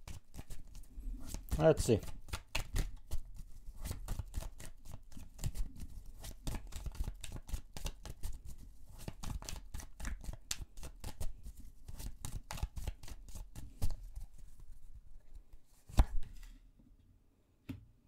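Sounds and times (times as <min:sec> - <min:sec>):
cards being shuffled: 0:00.0 - 0:14.7, 0:15.8 - 0:16.5.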